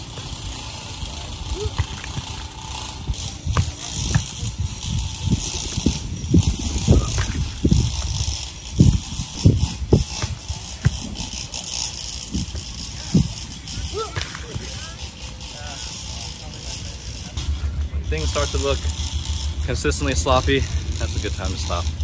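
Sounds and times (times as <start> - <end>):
wind buffeting microphone: 0.0 - 14.8.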